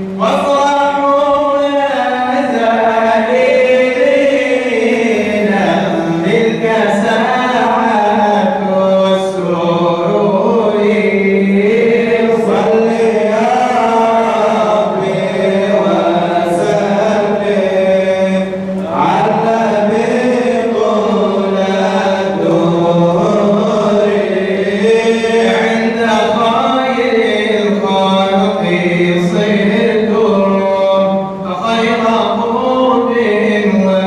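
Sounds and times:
men chanting a praise song: 0.1 - 34.0.

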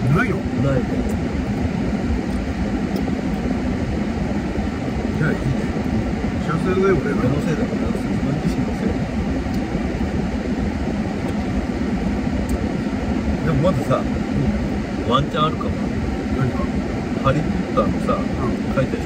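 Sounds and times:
air conditioning running: 0.0 - 19.0
idling car hum: 0.0 - 19.0.

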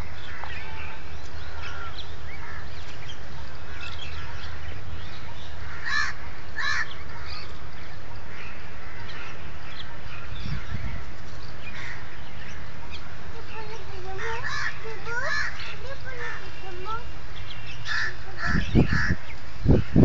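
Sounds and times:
birds chirping: 0.0 - 20.0
harsh bird calls: 0.0 - 20.0.

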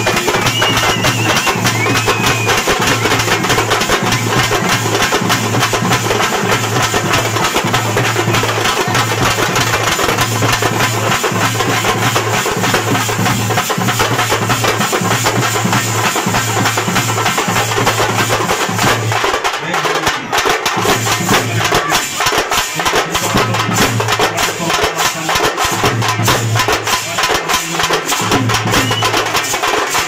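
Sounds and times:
drum-driven dance music: 0.0 - 30.0.

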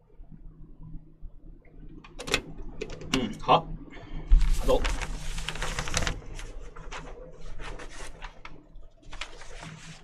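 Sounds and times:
paper rustling and crackling: 4.4 - 10.0.

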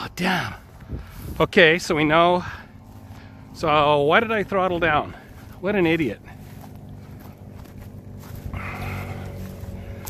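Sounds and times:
footsteps through dry grass: 0.1 - 10.0.

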